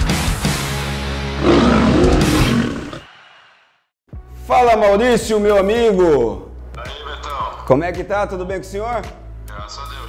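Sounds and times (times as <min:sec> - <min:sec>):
heavy rock music: 0:00.0 - 0:03.0
lion roar: 0:01.4 - 0:03.1.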